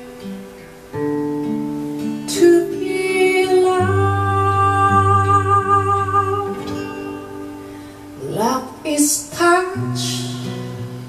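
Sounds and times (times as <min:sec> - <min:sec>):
acoustic guitar: 0:00.0 - 0:11.0
woman singing: 0:02.1 - 0:11.0.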